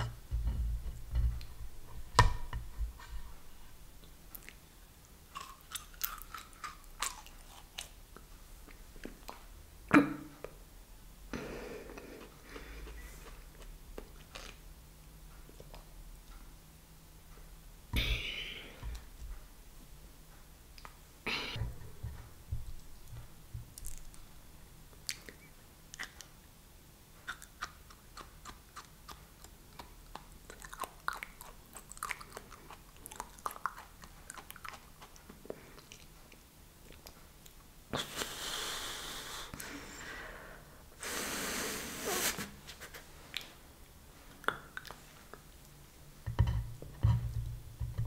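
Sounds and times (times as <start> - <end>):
crisp wet chewing crunches: 27.3 - 36.2.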